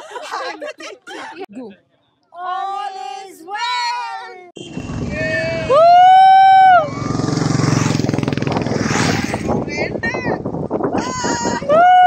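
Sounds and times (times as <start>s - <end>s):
motorcycle engines running: 4.7s - 10.6s
high whooping cheer: 5.1s - 7.1s, 11.6s - 12.0s.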